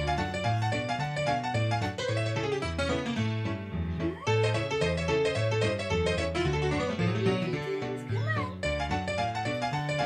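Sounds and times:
background music: 0.0 - 10.0
kitten meowing: 4.0 - 4.6, 7.4 - 8.6.

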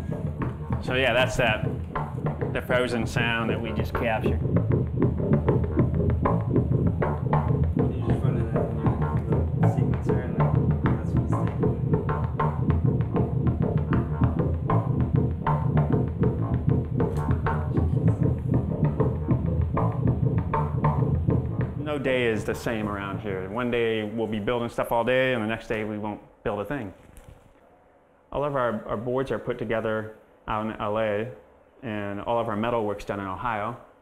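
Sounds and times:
clicky percussive synth notes: 0.0 - 21.8
low synth pulse: 0.0 - 22.2.

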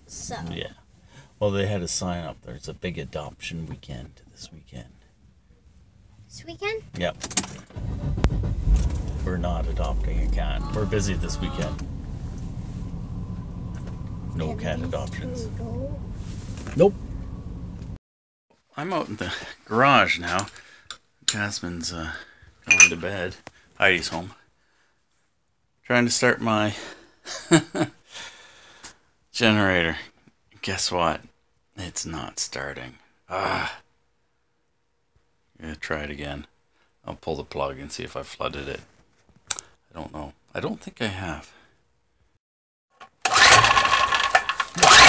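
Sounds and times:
car engine rumble: 7.6 - 18.0
man laughing: 10.3 - 11.8, 27.3 - 28.0
rattles and clicks: 43.1 - 45.0.

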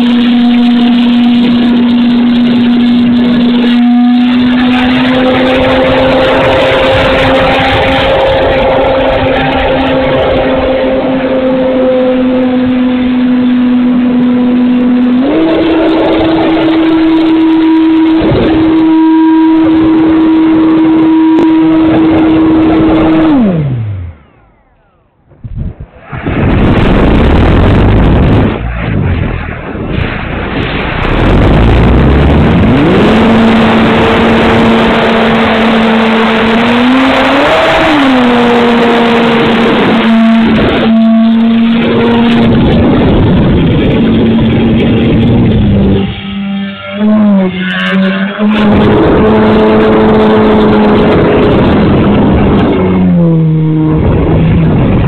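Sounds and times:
electric motor propeller whine: 0.0 - 25.2
wind noise on camera: 0.0 - 55.0.

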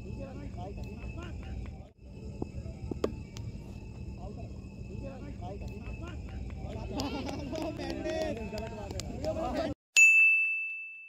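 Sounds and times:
voices: 0.0 - 9.8
bright ding: 10.0 - 11.0.

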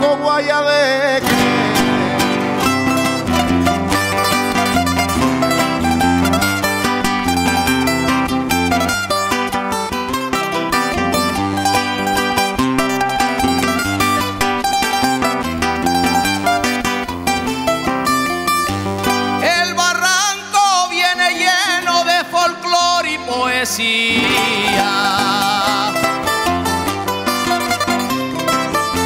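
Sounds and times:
guitars strumming: 0.0 - 29.0
picked lute melody: 0.0 - 29.0.

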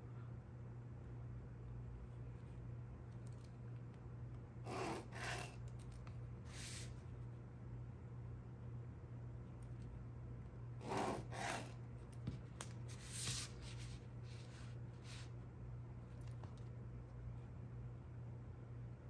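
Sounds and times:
low steady hum: 0.0 - 19.0
pen scratching on paper: 4.7 - 5.6, 10.8 - 11.8
plastic ruler sliding on paper: 4.7 - 5.6, 6.5 - 6.9, 10.8 - 11.8.

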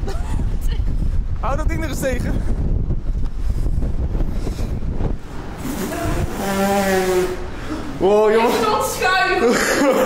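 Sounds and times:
strong wind buffeting microphone: 0.0 - 9.6.

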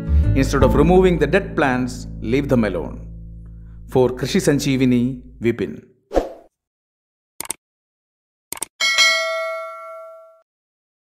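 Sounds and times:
bell ding: 8.8 - 10.5.

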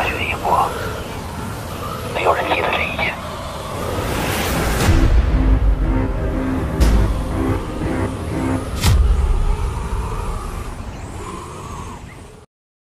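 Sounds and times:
low musical drone: 0.0 - 12.4
rushing storm wind: 0.0 - 12.4
deep boom: 4.8 - 9.7.

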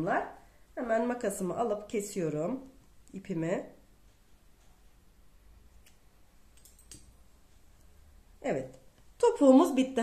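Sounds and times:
scissors snipping yarn: 5.8 - 7.2.

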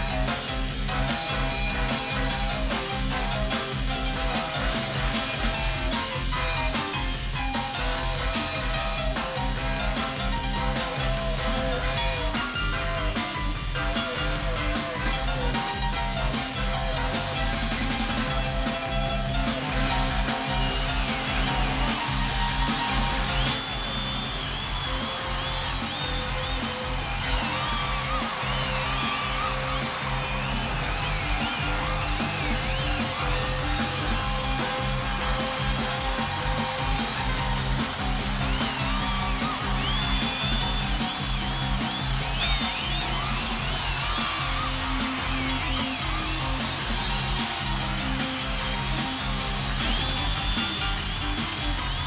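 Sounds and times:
live rock band playing: 0.0 - 52.0.

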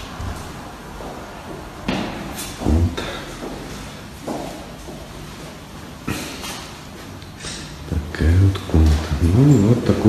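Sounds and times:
footsteps on tiled floor: 0.0 - 7.5.

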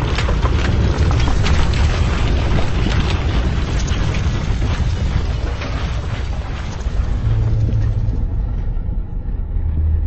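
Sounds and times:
deep cinematic boom rumble: 0.9 - 10.0.

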